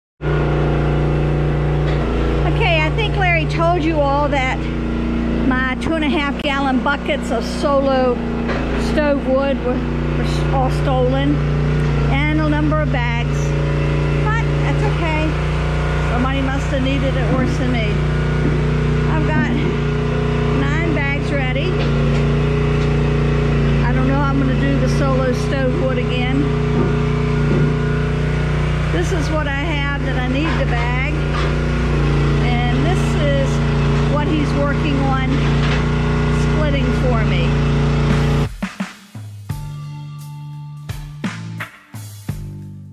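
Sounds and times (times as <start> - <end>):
engine droning steadily: 0.2 - 38.5.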